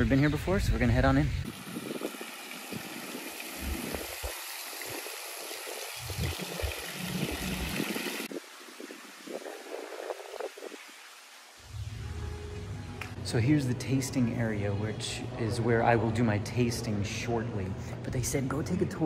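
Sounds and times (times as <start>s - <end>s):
fountain splashing: 1.4s - 11.9s.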